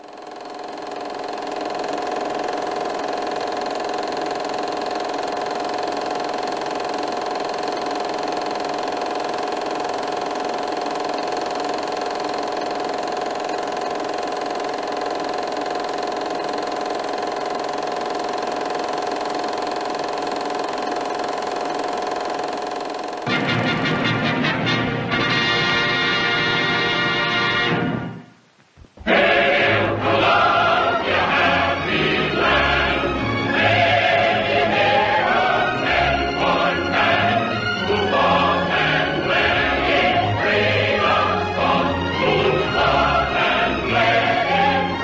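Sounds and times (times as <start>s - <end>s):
brass and timpani fanfare: 23.3s - 28.1s.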